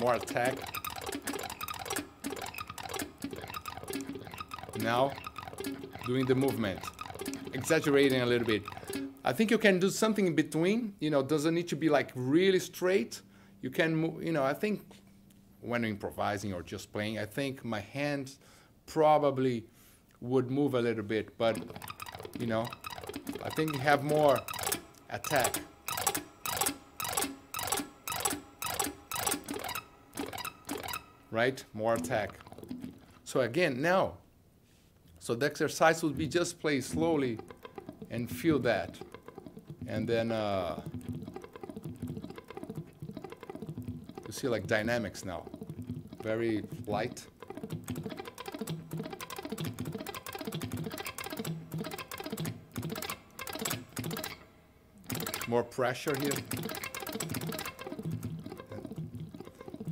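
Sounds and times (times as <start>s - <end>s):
clean electric guitar arpeggios: 0.0s - 9.4s, 21.4s - 33.3s, 35.9s - 59.9s.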